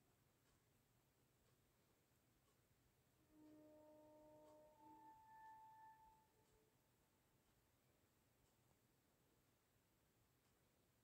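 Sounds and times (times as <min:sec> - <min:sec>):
soft sustained music tones: 0:03.0 - 0:09.4.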